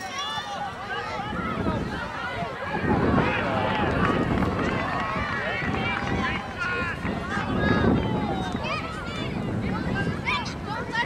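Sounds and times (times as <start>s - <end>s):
crowd shouting and calling out: 0.0s - 11.0s
wind on microphone: 0.0s - 11.0s.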